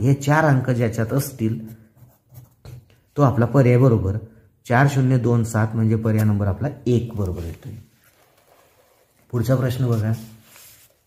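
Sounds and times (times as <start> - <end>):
pencil scratching on paper: 1.5 - 3.0.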